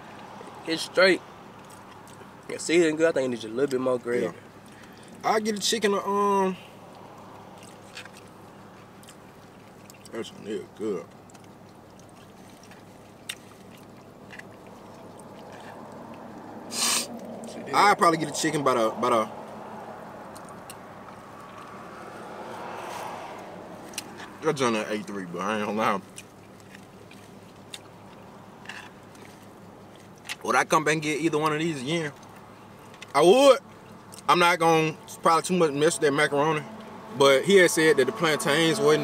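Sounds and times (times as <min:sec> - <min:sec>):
chewing: 0:01.5 - 0:02.6, 0:03.6 - 0:05.7, 0:06.6 - 0:17.6, 0:19.8 - 0:24.4, 0:26.0 - 0:30.4, 0:31.5 - 0:34.3
car cabin background noise: 0:12.2 - 0:39.0.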